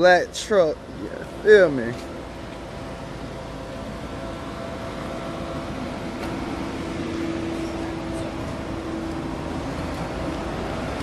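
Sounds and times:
background hum and hiss: 0.0 - 11.0.

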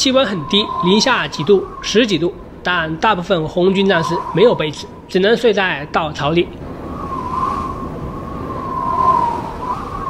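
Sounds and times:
howling wind whistle: 0.0 - 10.0
low rushing noise: 0.0 - 10.0.

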